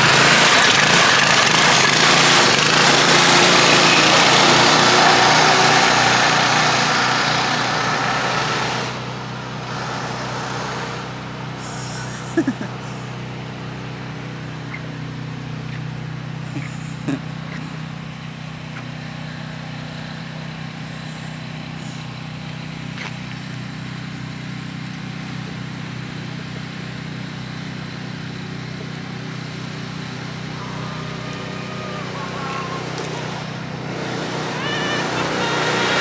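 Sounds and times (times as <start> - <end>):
engine humming steadily: 0.0 - 36.0.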